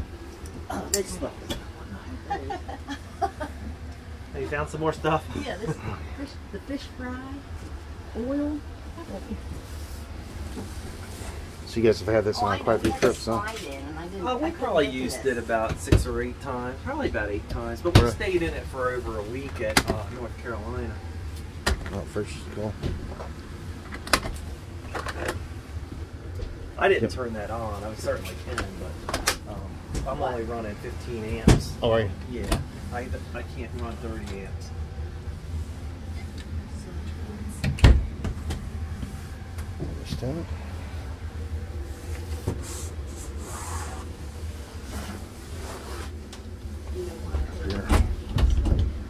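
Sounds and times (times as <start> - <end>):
steady low rumble: 0.0 - 49.0.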